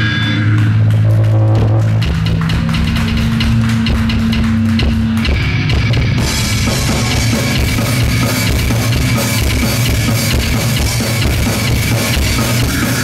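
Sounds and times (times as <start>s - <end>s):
fast dense drumming: 0.0s - 13.0s
live metal band playing: 0.0s - 13.0s.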